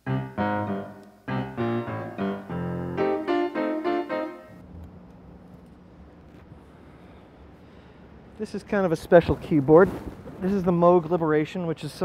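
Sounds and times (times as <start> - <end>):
synthesizer playing notes: 0.0 - 4.6.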